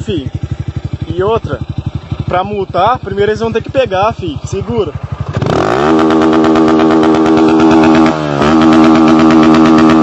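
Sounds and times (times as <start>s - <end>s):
motorcycle revving loudly: 0.0s - 10.0s.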